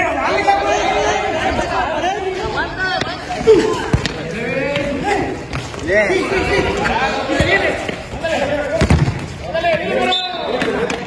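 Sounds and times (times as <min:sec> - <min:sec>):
players and spectators shouting: 0:00.0 - 0:11.0
ball kicked on concrete: 0:03.8 - 0:05.8, 0:08.7 - 0:09.4.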